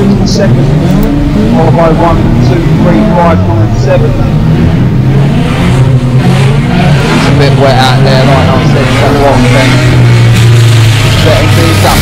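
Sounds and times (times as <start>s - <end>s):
race car engines running hard: 0.0s - 12.0s.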